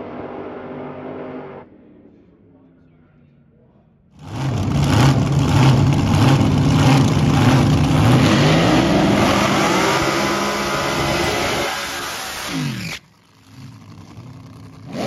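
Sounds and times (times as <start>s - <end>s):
dragster engine revving: 0.0s - 1.7s, 4.2s - 15.0s.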